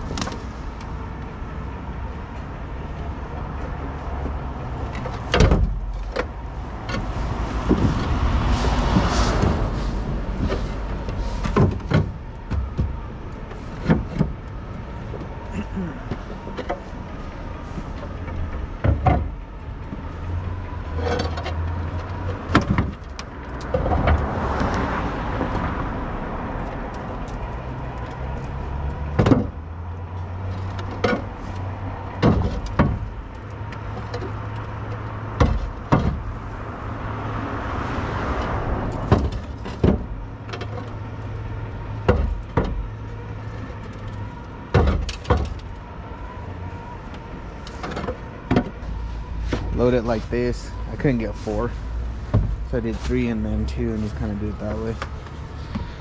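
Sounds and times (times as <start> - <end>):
car passing: 0.0 - 56.0.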